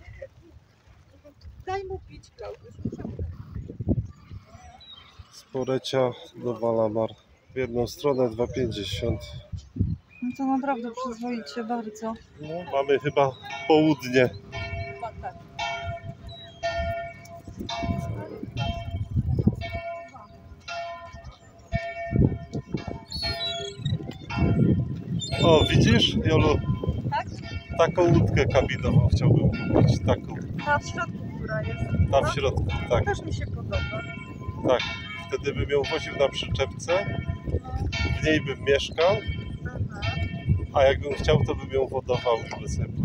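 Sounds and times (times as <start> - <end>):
church bell ringing: 12.4 - 43.0.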